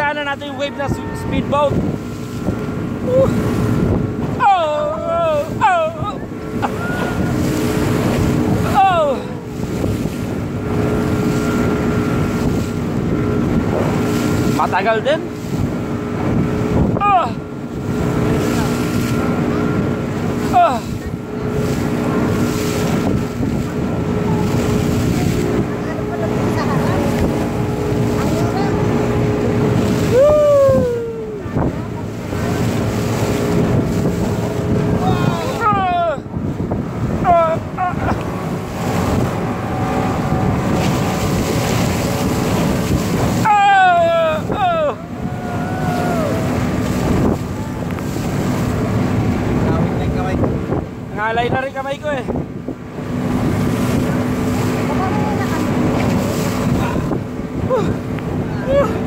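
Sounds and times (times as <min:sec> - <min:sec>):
rushing water: 0:00.0 - 0:59.0
speedboat engine droning: 0:00.0 - 0:59.0
wind buffeting microphone: 0:00.0 - 0:59.0.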